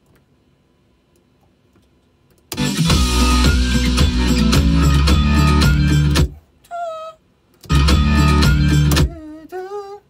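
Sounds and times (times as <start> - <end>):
music with beat and guitar: 2.5 - 6.4, 7.6 - 9.2.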